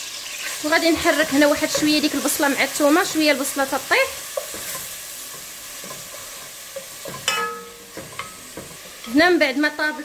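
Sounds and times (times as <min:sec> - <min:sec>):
onion and garlic sizzling in oil: 0:00.0 - 0:10.0
wooden spatula scraping a pot: 0:04.2 - 0:09.2.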